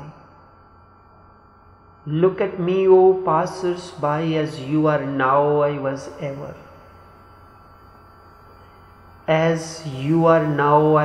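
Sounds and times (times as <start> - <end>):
low steady hum: 0.0 - 11.0
thin steady tones: 0.0 - 11.0.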